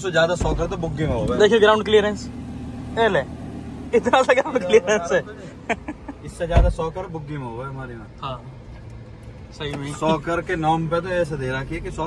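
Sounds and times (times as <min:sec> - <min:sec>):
car engine humming: 0:00.0 - 0:12.0
people talking and laughing: 0:03.9 - 0:06.6, 0:09.7 - 0:10.6.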